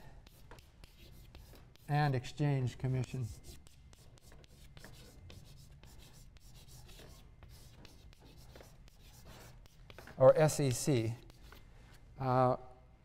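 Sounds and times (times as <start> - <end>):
chalk scratching on blackboard: 0.2 - 12.0.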